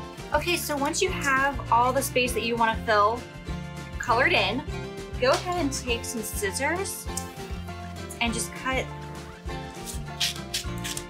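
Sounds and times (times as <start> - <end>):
background music: 0.0 - 11.0
scissors snipping wax paper: 9.7 - 11.0.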